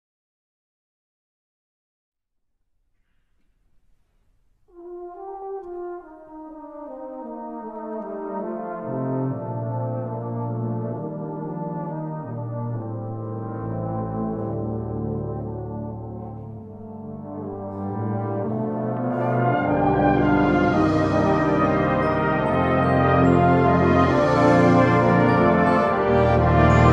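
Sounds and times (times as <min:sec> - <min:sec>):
brass band playing held chords: 0:04.7 - 0:26.9.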